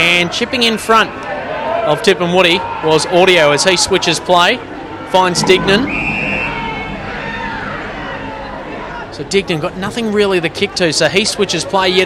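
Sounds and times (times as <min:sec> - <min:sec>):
open ground ambience: 0:04.0 - 0:11.7
whistle blast: 0:05.4 - 0:07.6.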